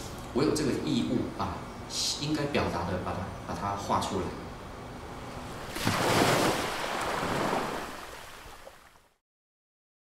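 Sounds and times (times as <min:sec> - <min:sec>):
ocean waves washing in: 0:05.3 - 0:09.2.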